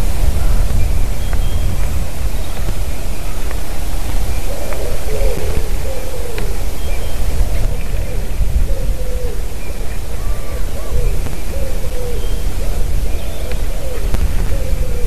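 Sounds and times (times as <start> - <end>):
distant bird calling: 0.0 - 15.0
wind buffeting microphone: 0.0 - 15.0.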